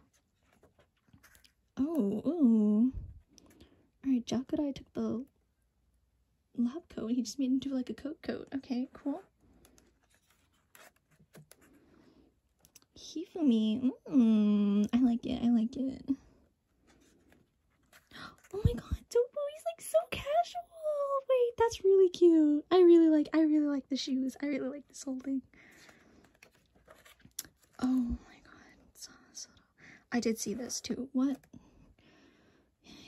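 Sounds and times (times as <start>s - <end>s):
book page turning: 0.0s - 1.7s, 8.9s - 11.8s, 25.7s - 28.0s.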